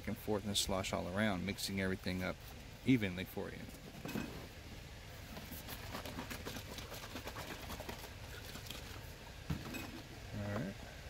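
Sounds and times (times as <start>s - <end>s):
liquid sloshing in plastic jug: 5.3s - 10.0s.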